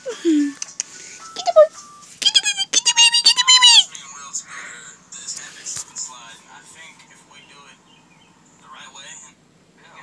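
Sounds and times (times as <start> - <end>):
child squealing: 1.6 - 3.9.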